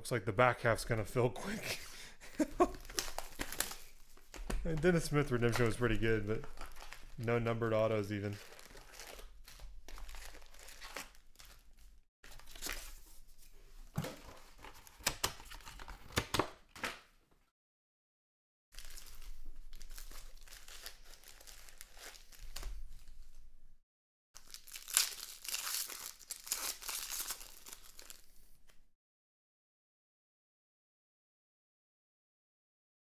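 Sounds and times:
foil packs crinkling: 2.3 - 13.0, 18.8 - 23.2, 24.4 - 28.3
foil pack tearing open: 2.7 - 4.0, 6.4 - 7.1, 18.8 - 23.1, 24.4 - 28.2.

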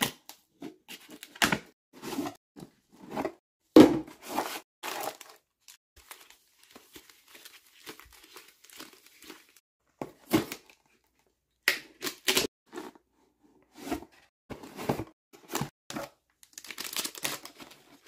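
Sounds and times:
cardboard packaging crinkling: 4.3 - 9.6, 16.4 - 18.0.

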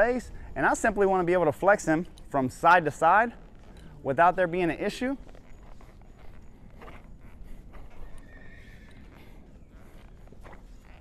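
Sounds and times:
hooves thudding in sand: 0.0 - 11.0
horse whinnying: 7.8 - 11.0.

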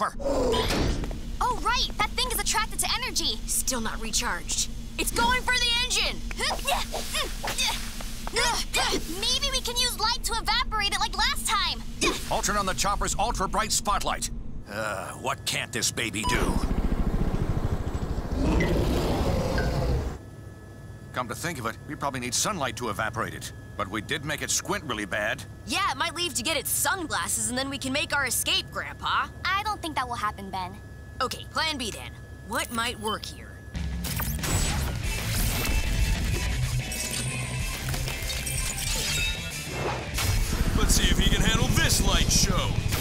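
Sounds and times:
cartoon helicopter rotor chopping: 16.3 - 20.2, 40.4 - 43.0.

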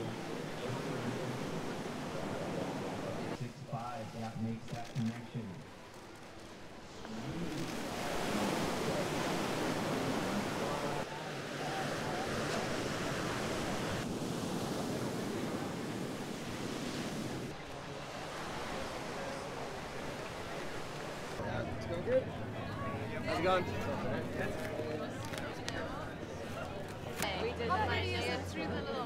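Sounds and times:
ocean surf breaking on beach: 0.0 - 3.7, 5.8 - 21.4.

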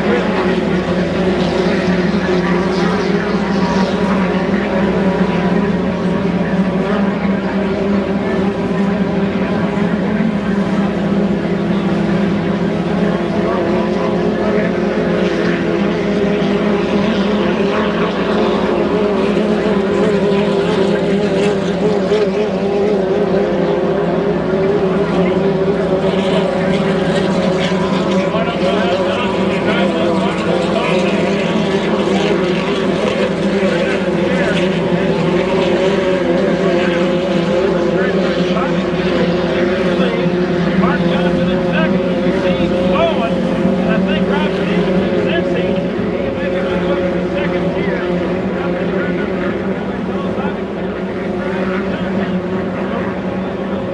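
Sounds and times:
racing boat engines droning: 0.0 - 53.9.

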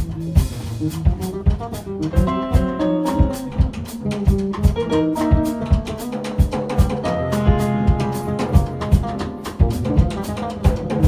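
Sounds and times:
drum kit: 0.0 - 11.0
electric bass guitar: 0.0 - 11.0
electric keyboard: 1.3 - 11.0.

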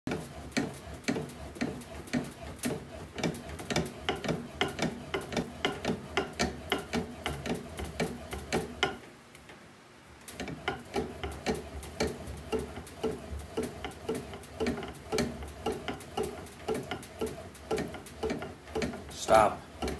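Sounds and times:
rapid even clicking: 0.1 - 9.0, 10.2 - 19.9.

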